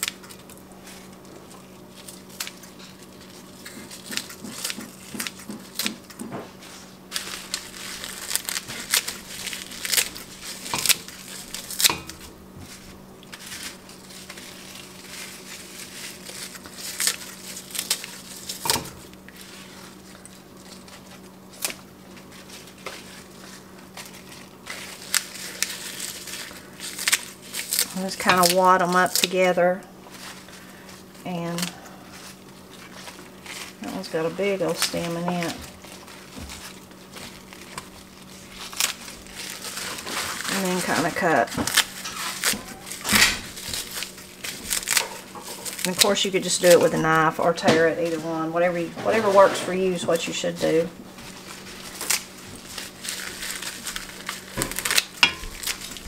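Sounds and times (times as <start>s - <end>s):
scissors snipping leaves: 0.0s - 1.1s, 2.0s - 6.4s, 7.1s - 12.3s, 13.2s - 21.9s, 22.5s - 30.5s, 31.3s - 56.0s
leaves crinkling: 0.0s - 56.0s.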